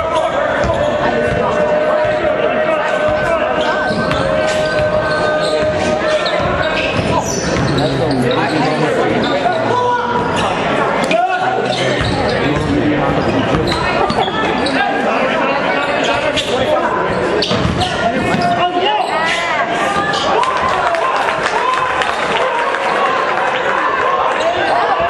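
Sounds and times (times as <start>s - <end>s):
spectators talking: 0.0s - 25.0s
sneakers squeaking on court: 0.5s - 10.8s, 11.4s - 15.0s, 15.6s - 19.4s.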